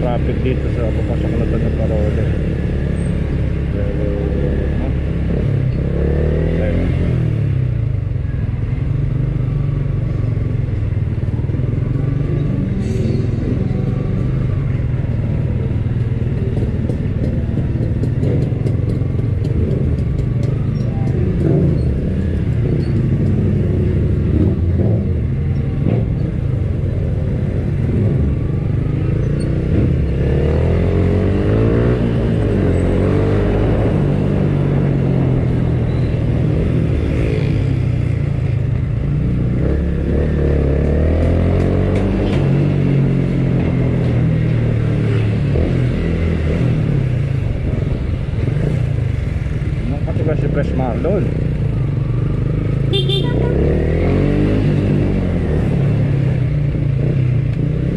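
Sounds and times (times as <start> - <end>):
motorcycle engine revving: 0.0 - 57.9.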